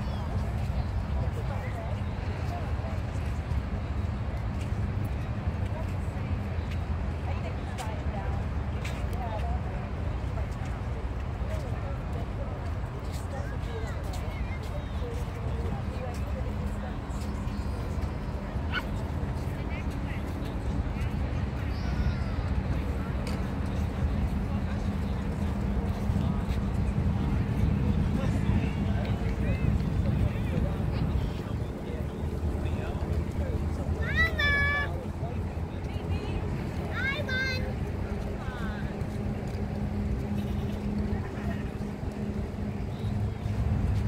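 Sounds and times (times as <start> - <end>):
faint indistinct voices: 0.0 - 44.0
low beach rumble: 0.0 - 44.0.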